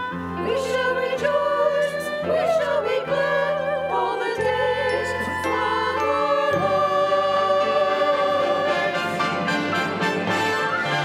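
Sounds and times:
choir singing in harmony: 0:00.0 - 0:11.0.

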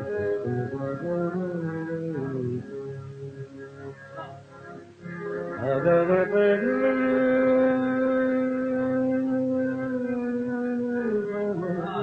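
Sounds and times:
man singing long held note: 0:00.0 - 0:03.5, 0:05.6 - 0:12.0.

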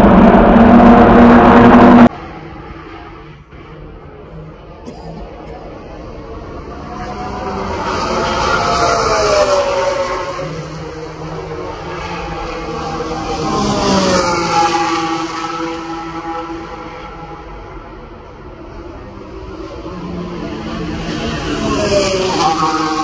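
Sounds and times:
race cars passing at high revs: 0:00.0 - 0:23.0.

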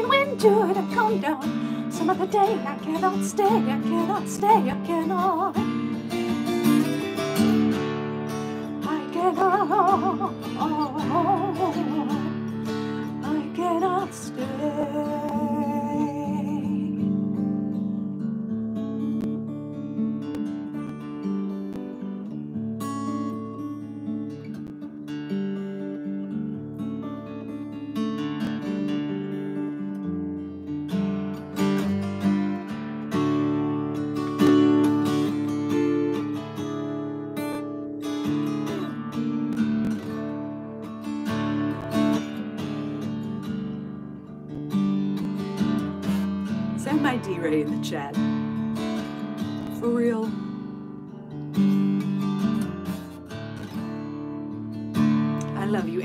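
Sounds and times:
acoustic guitar strummed and picked: 0:00.0 - 0:56.0.

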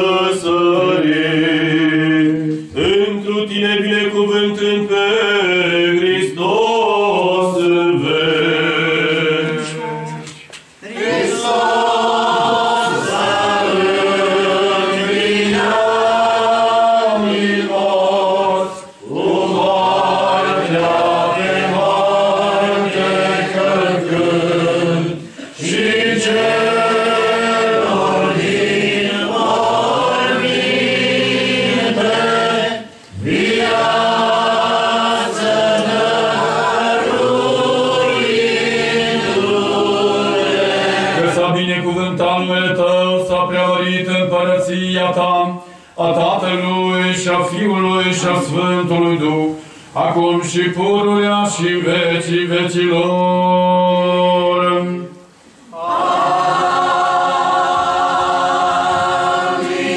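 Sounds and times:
group chanting a hymn: 0:00.0 - 0:59.9.

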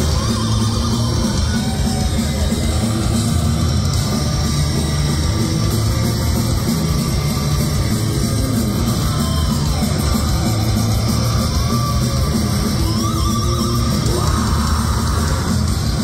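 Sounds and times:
heavy metal band playing live: 0:00.0 - 0:16.0.

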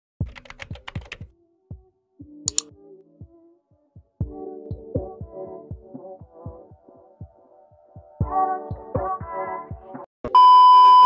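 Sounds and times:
computer keyboard typing: 0:00.2 - 0:01.3
single click: 0:02.5 - 0:02.7.

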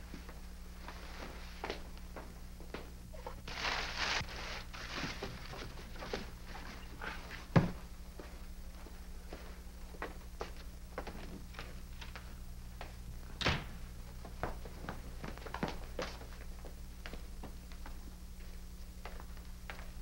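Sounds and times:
steady low hum: 0:00.0 - 0:20.0
cardboard rustling: 0:03.5 - 0:06.8.

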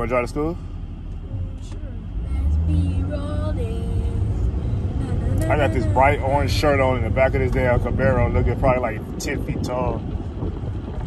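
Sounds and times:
car engine rumble: 0:00.0 - 0:11.0
road and wind noise: 0:00.0 - 0:11.0.

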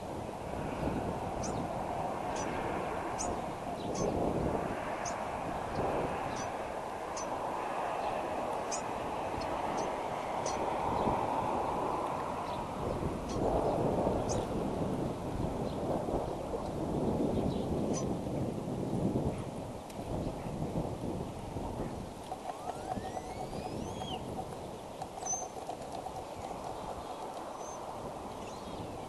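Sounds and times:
wind buffeting microphone: 0:00.0 - 0:29.0
high bird calls: 0:03.2 - 0:04.2, 0:08.1 - 0:10.7, 0:22.3 - 0:29.0.

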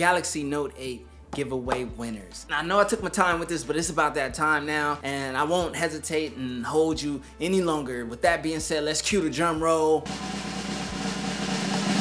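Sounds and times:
snare drum roll: 0:10.1 - 0:12.0.

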